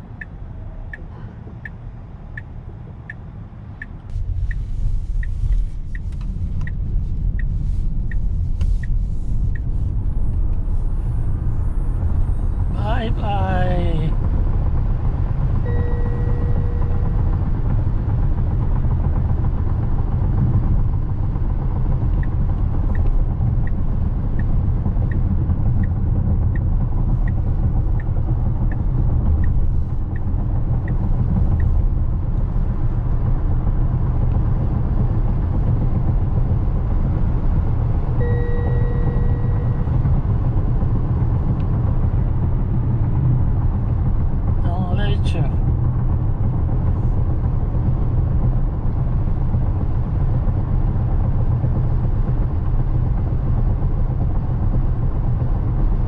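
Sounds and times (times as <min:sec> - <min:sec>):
road and tyre rumble: 0:00.0 - 0:56.0
turn-signal ticks: 0:05.2 - 0:09.7, 0:24.4 - 0:31.7, 0:38.2 - 0:40.6
two-tone chime: 0:15.7 - 0:17.2, 0:38.2 - 0:39.9.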